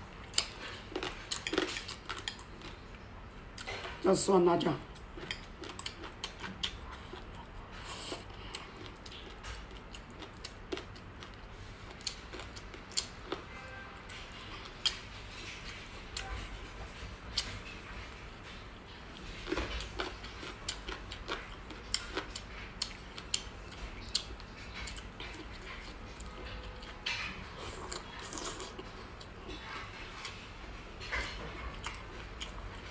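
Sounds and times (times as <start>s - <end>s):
person chewing and slurping: 0.2s - 3.0s, 4.9s - 13.5s, 14.3s - 32.9s.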